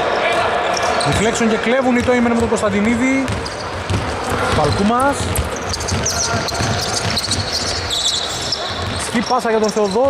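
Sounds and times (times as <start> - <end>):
sneakers squeaking on floor: 0.7 - 10.0
basketball dribbling on hardwood: 2.0 - 7.9.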